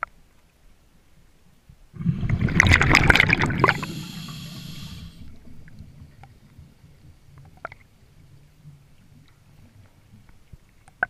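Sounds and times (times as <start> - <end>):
exhaled bubbles gurgling: 2.0 - 7.8
breath hissing through regulator: 3.3 - 5.3.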